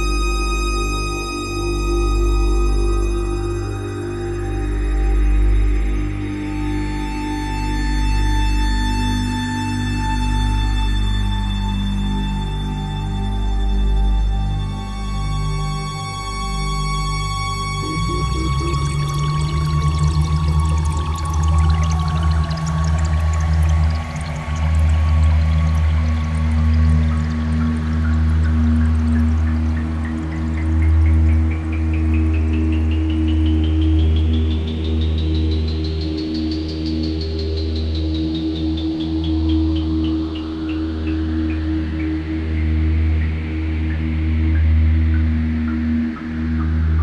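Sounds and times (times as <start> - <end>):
low synthesizer drone: 0.0 - 47.0
rising synth sweep: 14.0 - 31.4.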